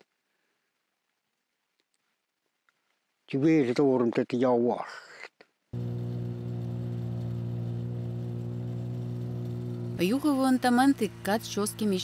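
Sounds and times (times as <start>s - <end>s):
snowmobile engine running: 5.8s - 12.0s.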